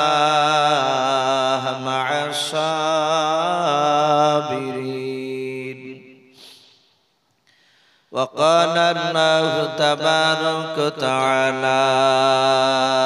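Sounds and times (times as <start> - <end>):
man chanting into a microphone: 0.0 - 6.3, 8.1 - 13.0.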